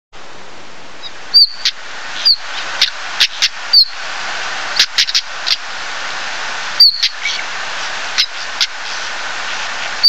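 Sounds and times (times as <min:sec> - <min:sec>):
steady hiss: 0:00.2 - 0:10.0
bird high falling whistle: 0:01.0 - 0:04.0, 0:06.8 - 0:07.4.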